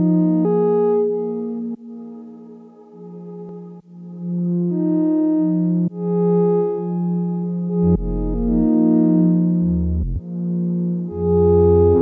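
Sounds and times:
synthesizer chords: 0.0s - 12.0s
deep sine bass note: 7.8s - 8.8s, 9.6s - 10.2s, 11.2s - 12.0s.

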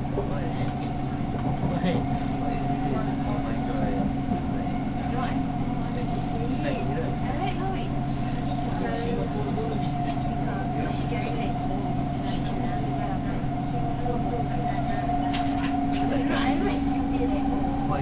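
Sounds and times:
train running rumble and whine: 0.0s - 18.0s.

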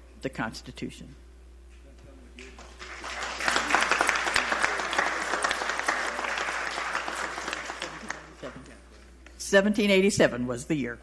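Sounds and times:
audience applauding: 2.4s - 8.8s.

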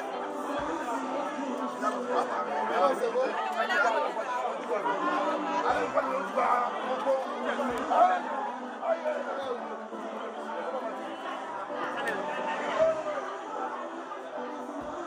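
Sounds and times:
men talking at once: 0.0s - 13.9s.

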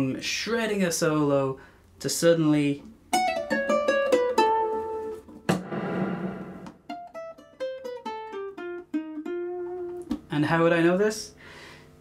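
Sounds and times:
ukulele plucked notes: 3.1s - 5.3s
brief noisy burst: 5.5s - 6.9s.

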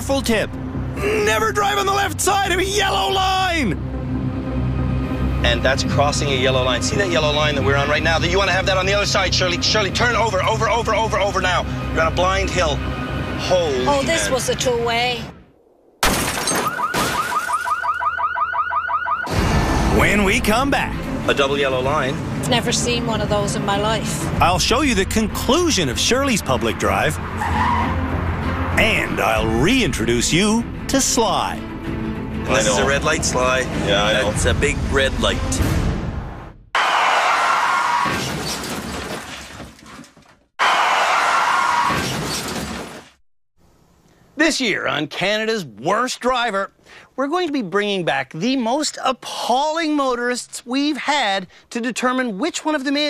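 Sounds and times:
crash with shattering glass: 16.0s - 17.8s, 38.1s - 40.0s, 41.9s - 43.2s
car alarm warbling chirps: 16.5s - 19.3s.

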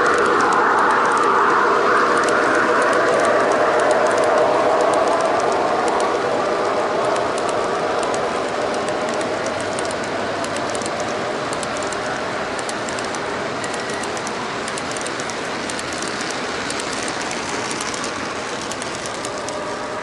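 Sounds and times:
model train cars rolling on track: 0.0s - 20.0s
wheels clicking over rail joints: 2.1s - 19.7s.

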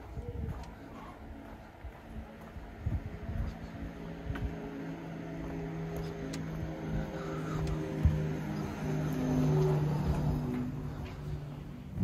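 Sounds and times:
car engine humming: 0.0s - 12.0s
footsteps on pavement: 0.0s - 12.0s.

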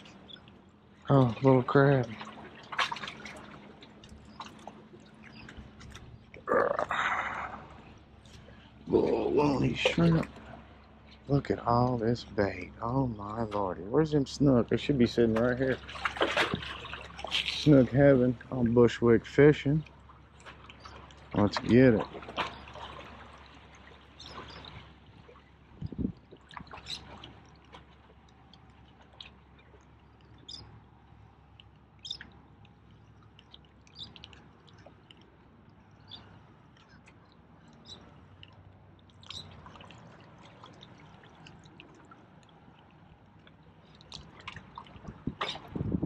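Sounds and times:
small waves lapping on rocks: 0.0s - 45.8s
light splashes: 0.0s - 46.0s.

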